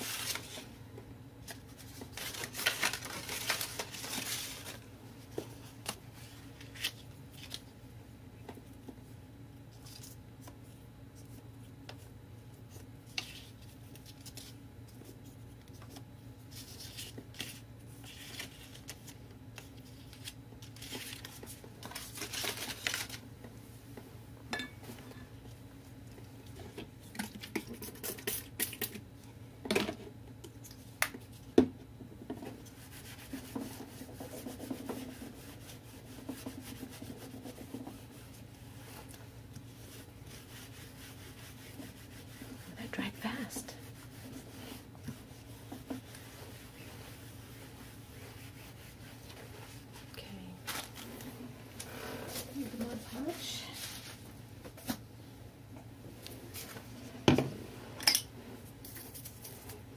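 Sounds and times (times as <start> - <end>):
steady low hum: 0.0 - 59.9
hands rubbing paper: 32.6 - 50.1.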